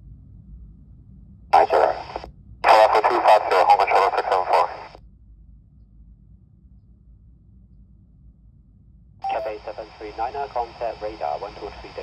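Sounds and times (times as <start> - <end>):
radio hiss: 1.6 - 5.0, 9.3 - 12.0
voice over radio speaker: 1.6 - 5.0, 9.3 - 12.0.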